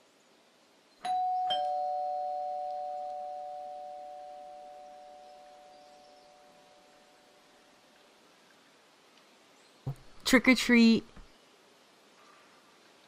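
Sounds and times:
two-tone doorbell chime: 1.0s - 5.8s.

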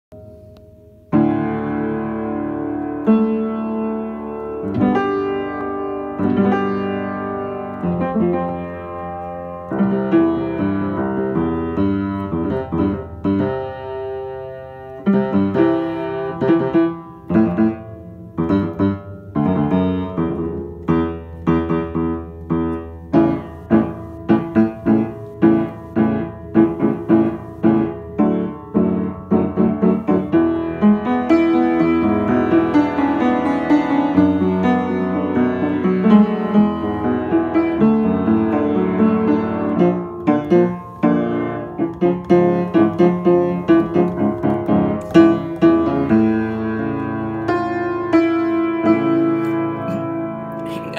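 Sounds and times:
upright piano notes and chords: 0.1s - 50.9s.

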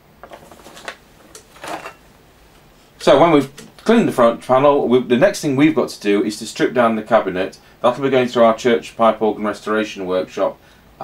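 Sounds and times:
paper rustling: 0.2s - 2.0s.

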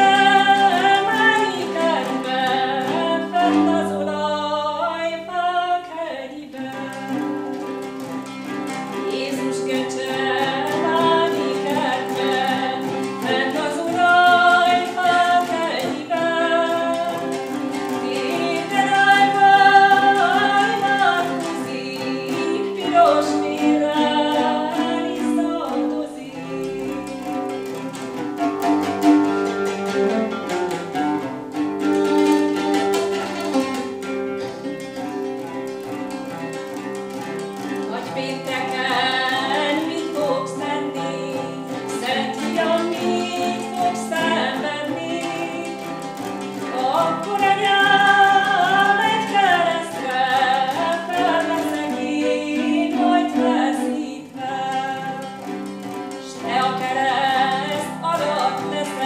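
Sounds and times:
plucked lute: 0.0s - 59.0s
woman singing: 0.0s - 59.0s.

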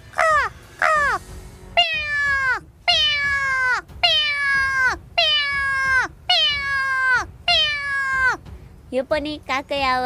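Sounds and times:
woman imitating cat meows: 1.8s - 8.4s.

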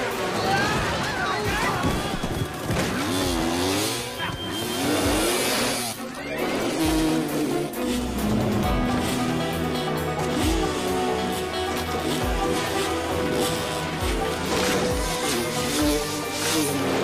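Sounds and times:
dirt-bike engines revving: 0.0s - 17.0s
film score music: 0.0s - 17.0s.

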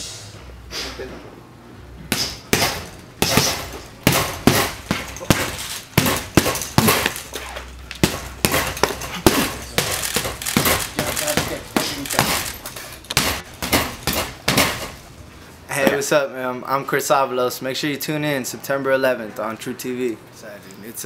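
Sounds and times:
gloves smacking punching bag: 2.1s - 15.0s.

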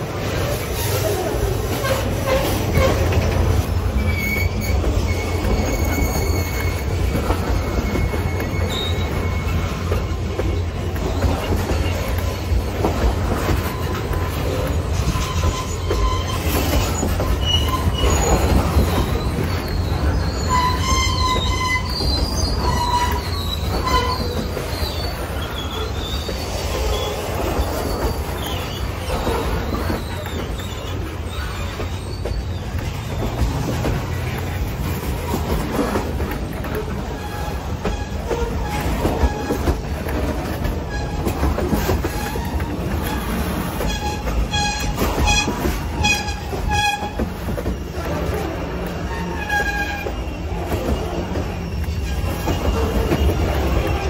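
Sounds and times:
train wheels rumbling on rail: 0.0s - 54.0s
faint wheel squeals: 0.2s - 54.0s.

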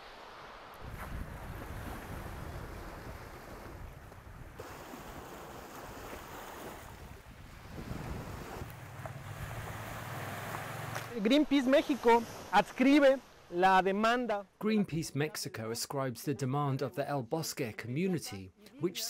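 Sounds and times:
sea surf washing ashore: 0.0s - 14.4s
wind buffeting microphone: 0.8s - 10.9s.

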